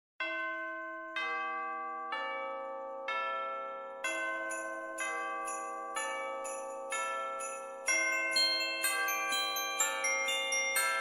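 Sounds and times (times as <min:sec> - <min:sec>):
bell-like chimes: 0:00.2 - 0:11.0.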